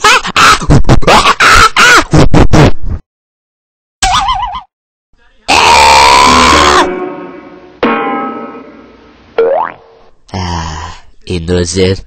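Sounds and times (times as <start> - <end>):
person screaming: 5.5 - 7.0.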